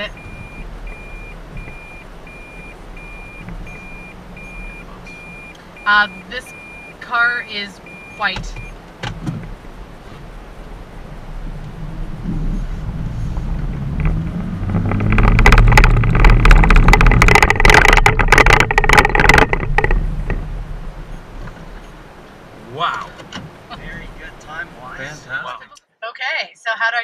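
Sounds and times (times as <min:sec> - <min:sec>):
car engine and road noise: 0:00.0 - 0:26.8
knocks and rattles: 0:12.2 - 0:21.9.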